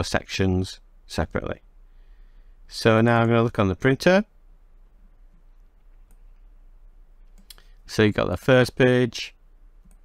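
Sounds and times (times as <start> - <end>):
low room hiss: 0.0 - 10.0
computer mouse clicks: 5.3 - 6.5, 7.2 - 7.7, 9.8 - 10.0.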